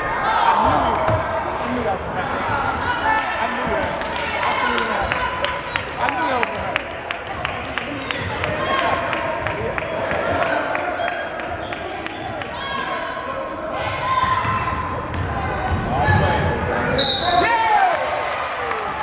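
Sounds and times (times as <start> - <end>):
spectators' voices: 0.0 - 19.0.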